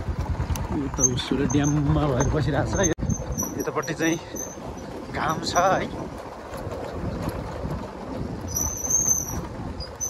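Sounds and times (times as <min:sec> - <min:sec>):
motorcycle engine rumble: 0:00.0 - 0:10.0.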